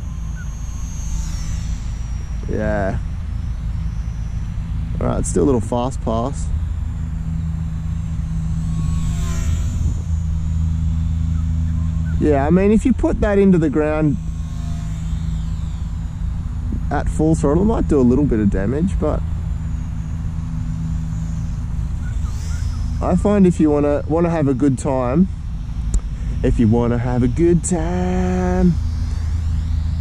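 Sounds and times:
model plane motor whining: 0.0 - 30.0
steady low hum: 0.0 - 30.0
steady low rumble: 0.0 - 30.0.

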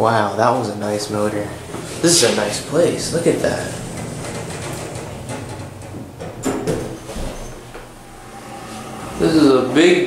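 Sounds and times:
steady low hum: 0.0 - 10.0
elevator door closing: 1.1 - 9.8.

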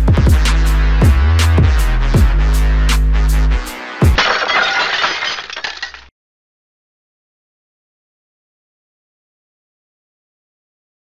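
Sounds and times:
glass shattering sound effect: 4.2 - 6.1.

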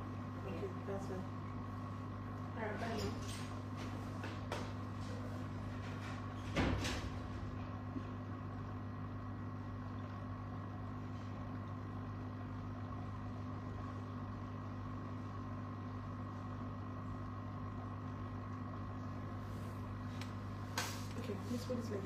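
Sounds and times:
machine humming: 0.0 - 3.0.

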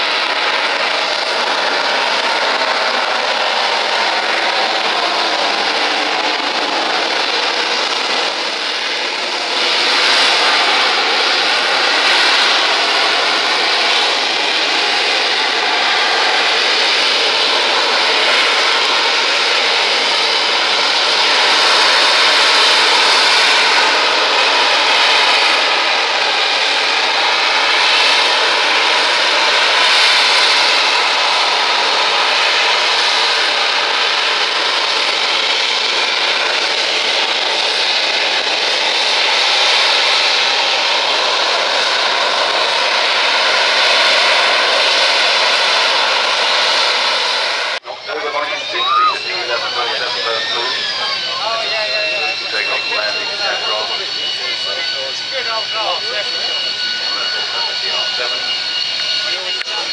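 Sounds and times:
jet engine hovering noise: 0.0 - 59.9.

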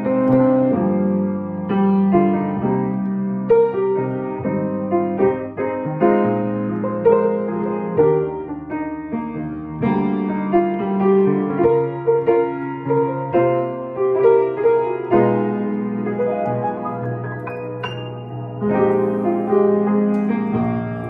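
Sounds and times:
grand piano ballad: 0.0 - 21.0.

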